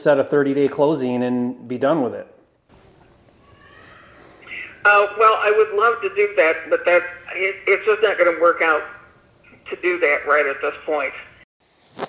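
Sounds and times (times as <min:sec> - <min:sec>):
woman's voice on the phone: 0:04.5 - 0:11.4.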